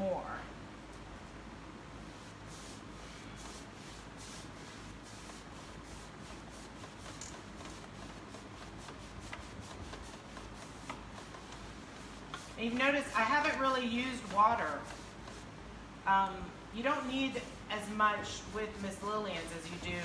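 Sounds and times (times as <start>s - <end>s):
low steady hum: 0.0s - 20.0s
paintbrush strokes on wood: 2.0s - 15.5s, 16.9s - 20.0s.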